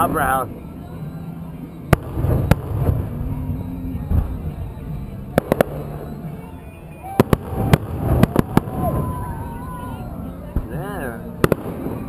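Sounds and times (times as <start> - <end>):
firework bangs: 1.9 - 12.0.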